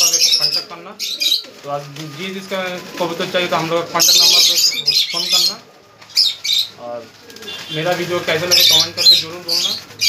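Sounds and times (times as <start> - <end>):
pigeons flapping wings: 1.2 - 6.2, 7.0 - 10.0.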